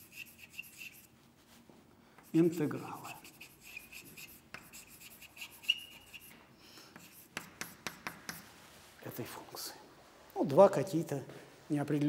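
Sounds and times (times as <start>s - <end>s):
chalk scratching on blackboard: 0.0s - 1.1s, 2.2s - 8.6s
chalk tapping on board: 0.0s - 1.1s, 2.2s - 8.5s.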